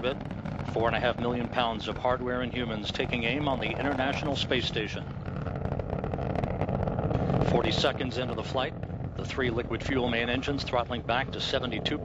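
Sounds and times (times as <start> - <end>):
rocket engines rumbling and crackling: 0.0 - 12.0.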